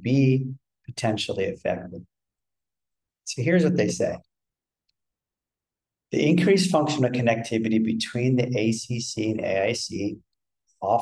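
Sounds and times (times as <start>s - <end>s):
man speaking: 0.0s - 2.1s, 3.2s - 4.3s, 6.1s - 11.0s.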